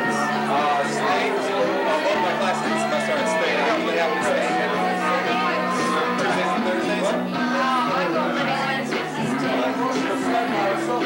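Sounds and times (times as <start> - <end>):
music: 0.0 - 11.0
party chatter: 0.0 - 11.0
people singing into microphones: 0.0 - 11.0.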